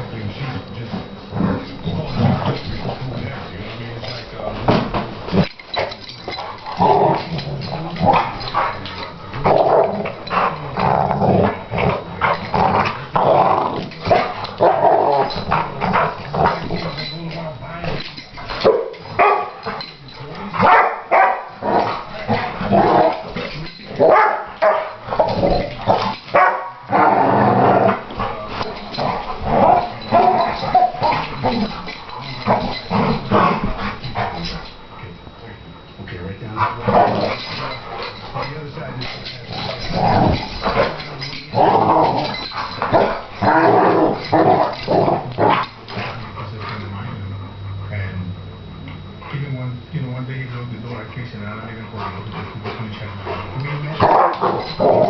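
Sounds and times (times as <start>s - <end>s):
dogs growling and barking: 1.0s - 49.4s, 51.7s - 55.0s.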